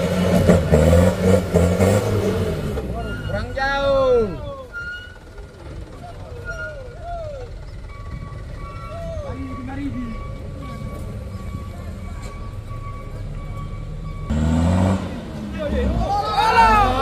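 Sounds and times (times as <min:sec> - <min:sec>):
diesel truck engine labouring: 0:00.0 - 0:17.0.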